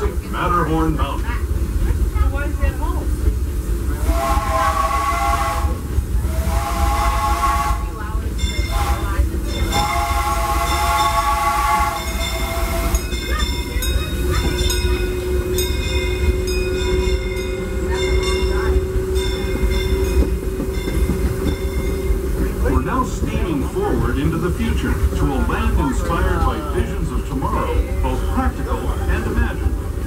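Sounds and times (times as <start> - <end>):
train rumbling: 0.0 - 30.0
steam train whistle: 4.0 - 8.0, 8.7 - 13.1
railroad crossing bell ringing: 8.2 - 22.5.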